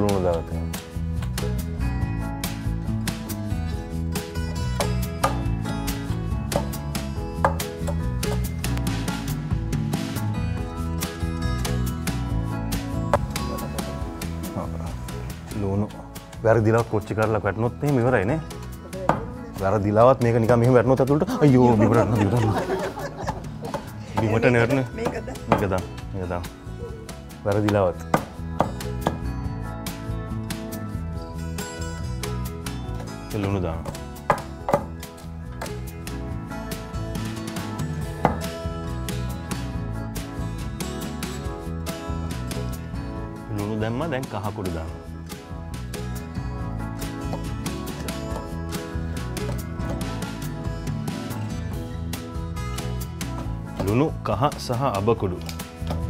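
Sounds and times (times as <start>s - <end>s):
guitar music: 0.0s - 56.0s
pestle pounding in stone mortar: 28.0s - 29.2s, 38.2s - 38.5s.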